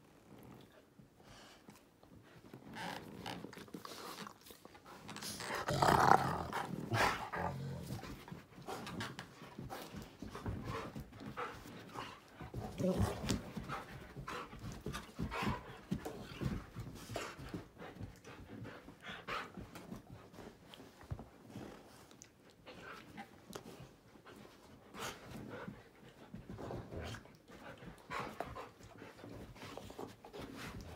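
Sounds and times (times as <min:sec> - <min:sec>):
dog growling and grumbling: 0:05.1 - 0:08.2, 0:12.6 - 0:13.5.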